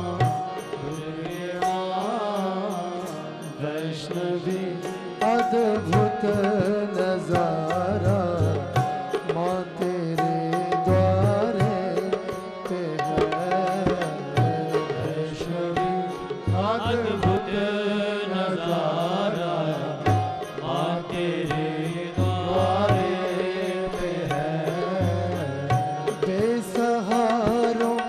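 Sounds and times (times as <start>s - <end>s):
devotional singing voice: 0.0s - 28.0s
harmonium chords: 0.0s - 28.0s.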